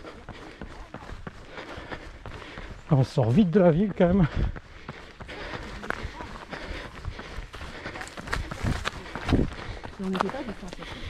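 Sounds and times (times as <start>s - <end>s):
running footsteps on tarmac: 0.0s - 11.0s.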